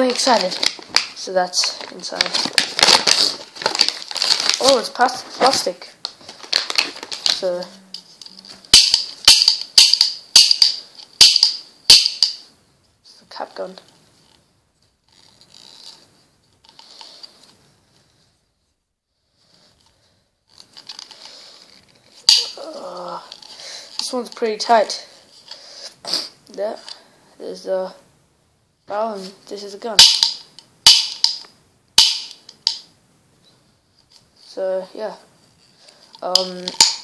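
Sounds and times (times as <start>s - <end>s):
rustling and scraping plastic toy: 0.0s - 12.4s, 13.1s - 18.4s, 19.2s - 26.0s, 28.9s - 32.8s, 33.4s - 37.0s
toy cap gun hammer clicks: 8.7s - 12.4s, 30.0s - 32.8s.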